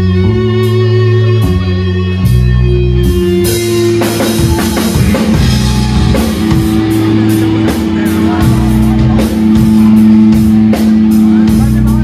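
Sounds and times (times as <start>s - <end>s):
distorted electric guitar and bass: 0.0s - 12.0s
drum kit beats: 0.0s - 12.0s.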